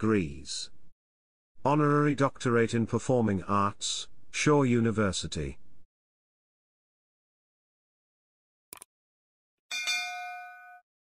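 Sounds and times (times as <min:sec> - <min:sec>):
bell-like notification ding: 0:09.7 - 0:10.8.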